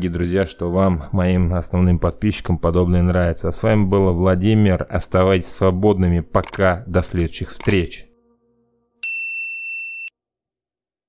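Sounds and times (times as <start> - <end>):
bright bell ding: 9.0 - 10.1.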